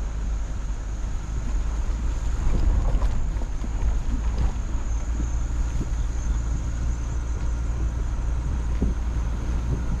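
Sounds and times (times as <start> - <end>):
vehicle rumbling over dirt track: 0.0 - 10.0
wind buffeting microphone: 1.3 - 10.0.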